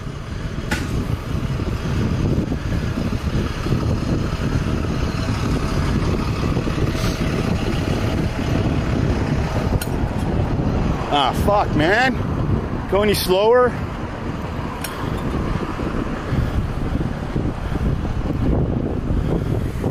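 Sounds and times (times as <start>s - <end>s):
road noise: 0.0s - 19.9s
wind rush on microphone: 0.0s - 19.9s.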